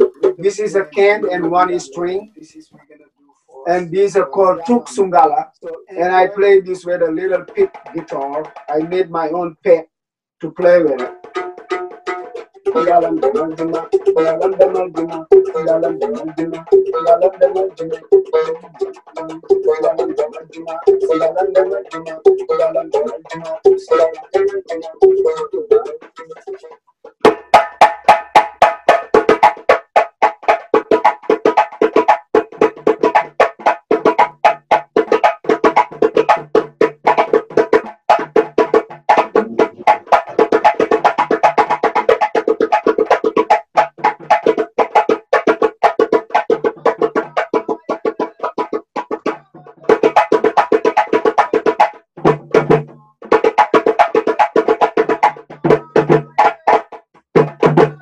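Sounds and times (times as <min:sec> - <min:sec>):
hand drum struck by hand: 0:00.0 - 0:01.6, 0:07.4 - 0:09.0, 0:10.6 - 0:58.0
drums beaten with sticks: 0:00.0 - 0:02.0, 0:04.1 - 0:09.0, 0:10.6 - 0:26.4, 0:27.1 - 0:58.0.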